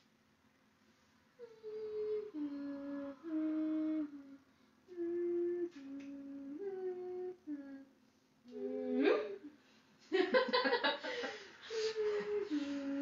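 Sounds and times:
woman humming a melody: 1.4s - 9.6s, 12.0s - 13.0s.

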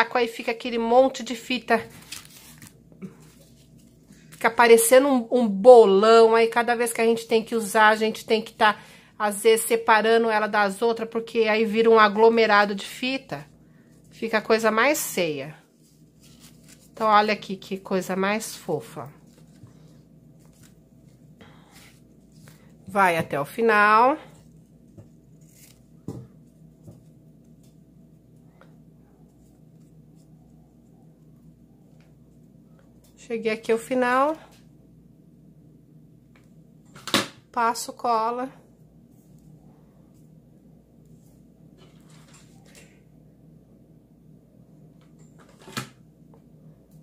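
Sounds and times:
low steady hum: 0.0s - 47.0s
ribbon rustling: 1.6s - 4.6s, 15.6s - 23.3s, 24.3s - 28.0s.

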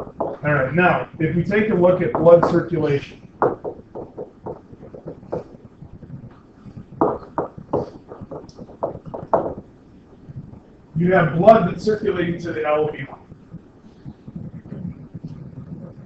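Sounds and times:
stylus tapping on tablet: 0.0s - 0.4s, 1.7s - 2.7s, 3.3s - 9.7s.

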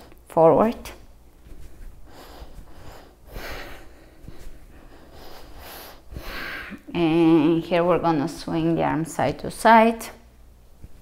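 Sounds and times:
woman breathing through nose: 2.0s - 6.8s.

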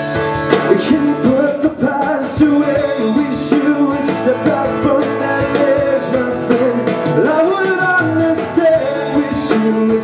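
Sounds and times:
strummed guitar: 0.0s - 10.0s
man singing: 0.5s - 10.0s.

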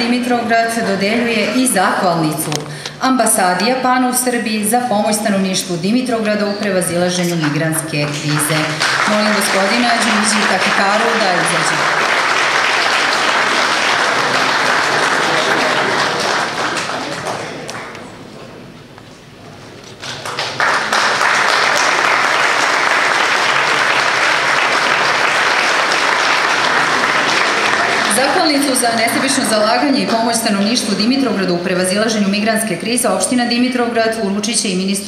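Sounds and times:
audience applauding: 7.4s - 18.1s, 19.9s - 30.6s.

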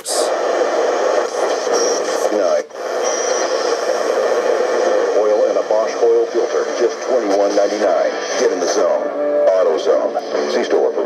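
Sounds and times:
radio static and hiss: 0.0s - 11.0s
snatches of broadcast voices: 0.0s - 11.0s.

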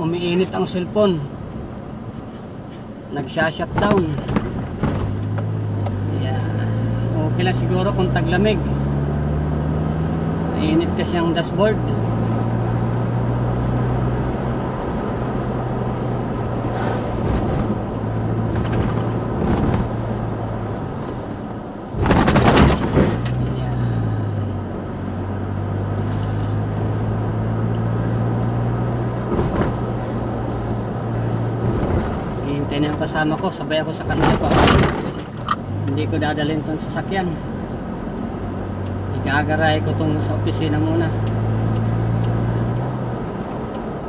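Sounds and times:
car engine and road noise: 0.0s - 44.0s.

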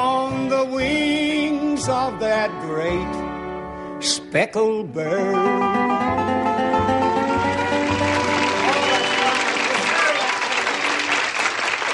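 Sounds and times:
band playing last notes: 5.3s - 11.8s
studio audience applauding: 7.3s - 11.9s.

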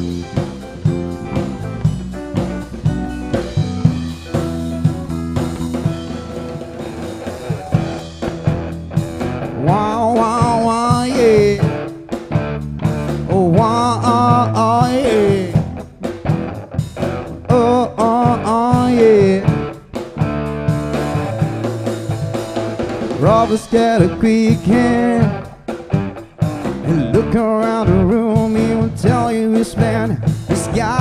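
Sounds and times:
live rock band playing: 0.0s - 31.0s
man singing: 9.5s - 11.9s, 13.2s - 15.9s, 17.4s - 19.8s, 23.1s - 25.6s, 26.7s - 31.0s.

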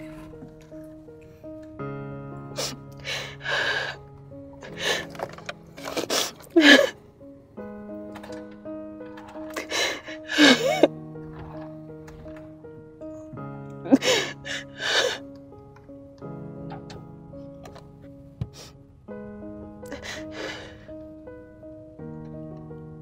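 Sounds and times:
slow music of held chords: 0.0s - 23.0s
woman sobbing: 5.9s - 7.0s, 9.5s - 10.9s, 13.8s - 15.2s, 19.9s - 20.9s.

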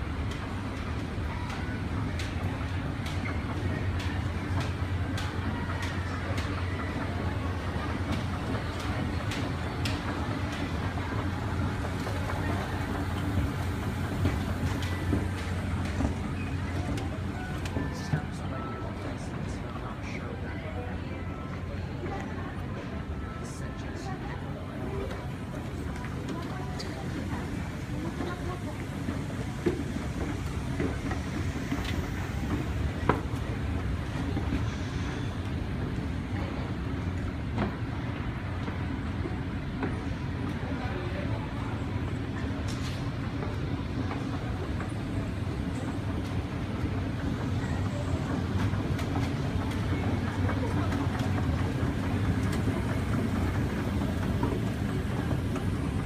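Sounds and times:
escalator mechanical rumble: 0.0s - 56.0s.

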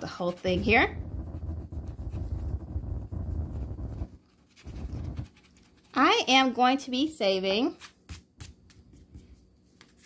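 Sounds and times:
coin scratching a scratch card: 0.0s - 6.1s.

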